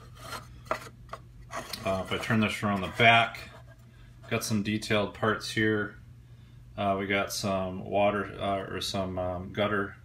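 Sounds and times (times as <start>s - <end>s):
plastic base scraping on surface: 0.0s - 4.4s.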